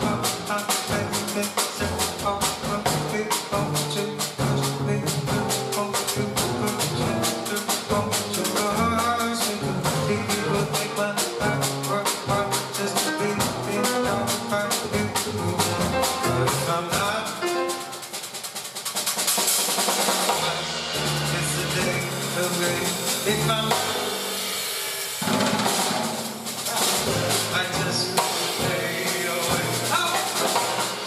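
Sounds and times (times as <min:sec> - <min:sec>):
plucked upright bass: 0:00.0 - 0:17.8, 0:20.4 - 0:24.1, 0:26.7 - 0:31.0
drum kit cymbals: 0:00.0 - 0:31.0
grand piano: 0:00.0 - 0:31.0.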